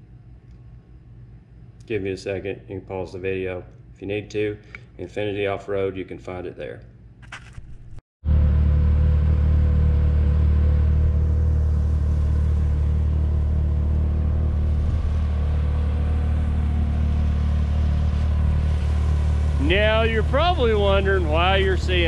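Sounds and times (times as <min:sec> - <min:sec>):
vehicle engine idling: 0:08.3 - 0:22.0.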